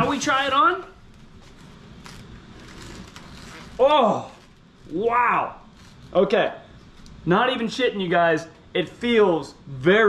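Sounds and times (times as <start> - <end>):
helmet rustling: 0.0 - 4.7.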